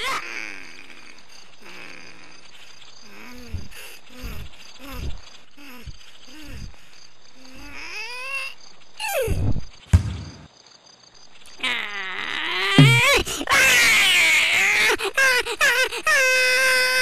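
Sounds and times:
cartoon character grunting and crying: 11.6 - 15.5.

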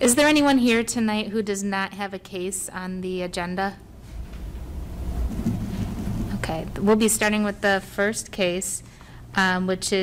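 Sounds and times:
low rumbling noise: 3.8 - 8.0.

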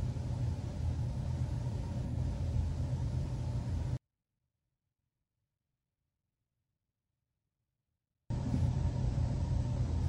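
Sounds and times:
faint constant hum: 0.0 - 4.0, 8.3 - 10.0
low room rumble: 0.0 - 4.0, 8.3 - 10.0.

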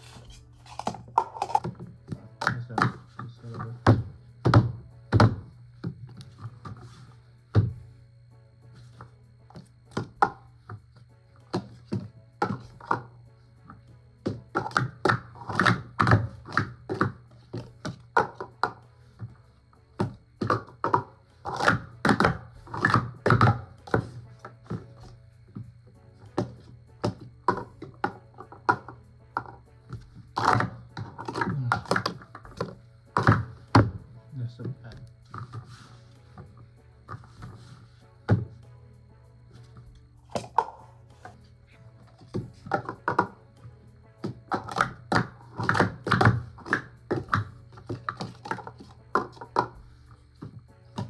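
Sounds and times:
plastic cups clacking: 0.0 - 7.7, 8.9 - 10.8, 11.4 - 19.3, 20.0 - 25.7, 26.3 - 34.0, 34.6 - 35.8, 40.2 - 41.4, 42.1 - 43.4, 44.2 - 51.0.

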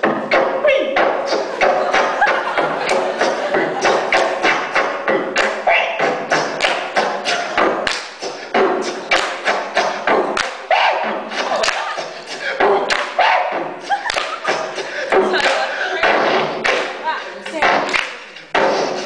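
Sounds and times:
person beatboxing: 0.0 - 19.0.

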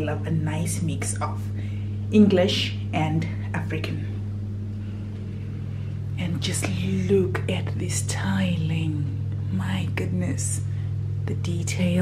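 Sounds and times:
extractor fan humming: 0.0 - 12.0.

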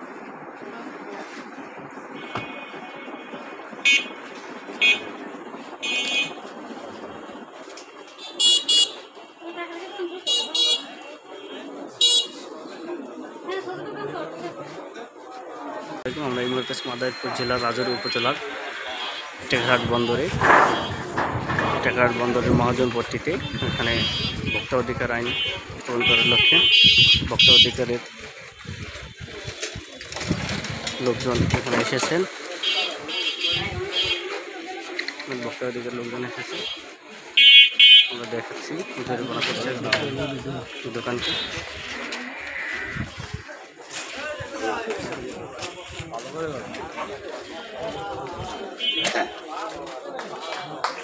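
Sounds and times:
murmur of people talking: 0.0 - 51.0
people's voices: 0.0 - 51.0
vehicle horn toots: 8.2 - 9.0, 18.7 - 22.8, 23.4 - 27.7.

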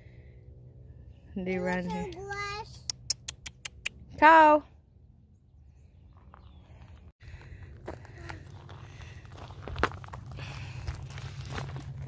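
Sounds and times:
footsteps on rocky dirt: 6.1 - 12.0.

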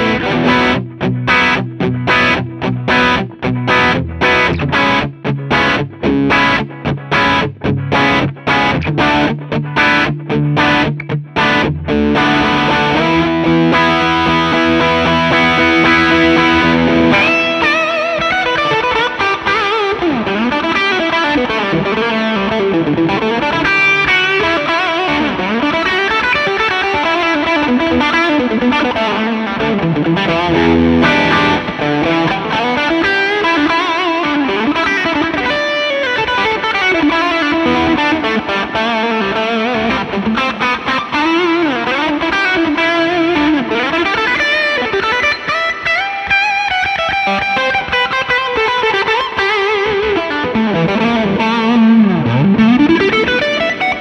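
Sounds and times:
overdriven electric guitar: 0.0 - 54.0.

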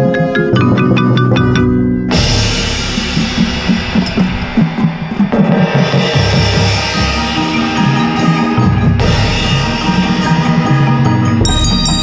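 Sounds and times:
marimba played fast: 0.0 - 4.2, 11.4 - 12.0
drums and cymbals: 0.0 - 12.0.

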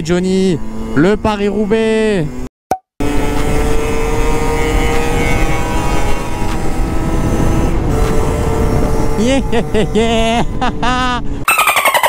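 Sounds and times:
two-stroke dirt bike engine: 0.1 - 11.0
wind buffeting microphone: 3.1 - 11.5.

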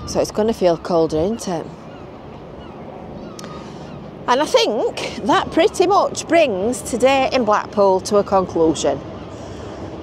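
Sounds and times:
faint high bird calls: 0.0 - 6.1
outdoor background rumble: 0.0 - 10.0
steady wind: 0.0 - 10.0.

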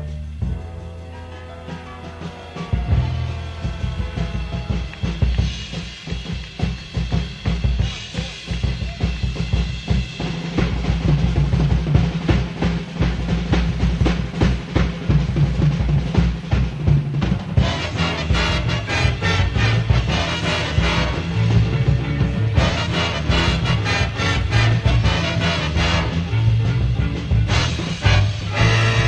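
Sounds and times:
drum kit playing jazz: 0.0 - 29.0.

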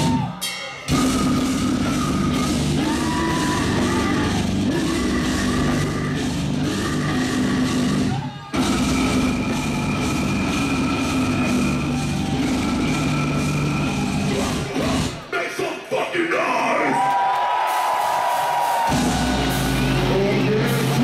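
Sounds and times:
distorted guitars: 0.0 - 15.9, 18.9 - 21.0
vocals: 0.0 - 17.1, 19.7 - 21.0
fast drumming: 0.9 - 15.2.

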